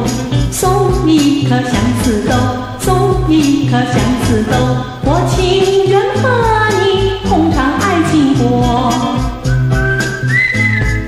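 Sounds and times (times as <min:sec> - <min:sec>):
instrumental pop music: 0:00.0 - 0:11.0.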